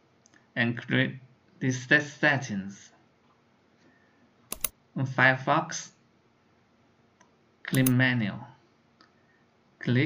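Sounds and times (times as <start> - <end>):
computer clicks: 4.5 - 4.8, 7.2 - 8.0.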